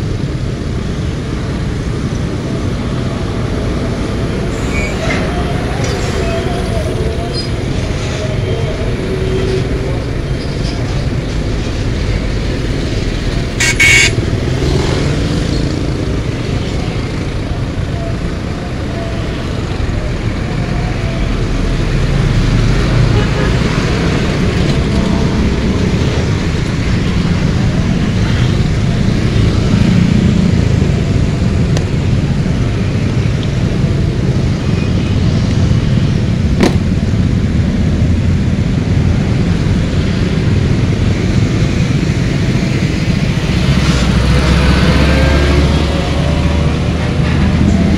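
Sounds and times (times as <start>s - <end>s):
trucks rumbling past: 0.0s - 47.9s
motorcycle engines passing: 1.2s - 47.9s.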